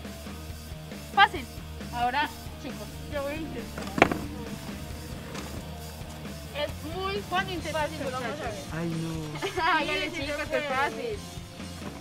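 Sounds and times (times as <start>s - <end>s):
background music: 0.0s - 12.0s
plastic chair knocking on concrete: 2.3s - 5.8s.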